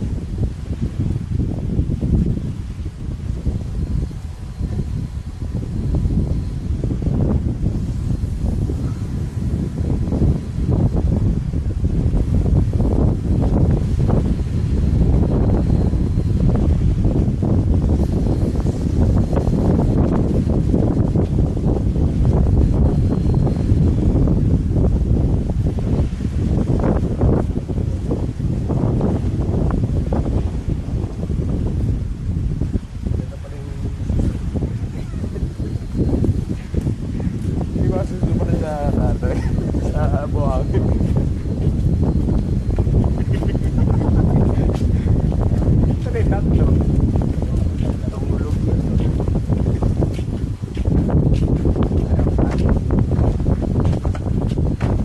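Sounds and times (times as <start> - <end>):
wind buffeting microphone: 0.0 - 55.0.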